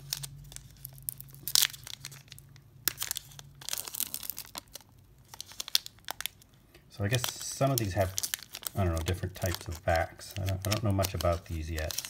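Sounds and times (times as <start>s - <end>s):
foil wrapper tearing and crinkling: 0.0s - 12.0s.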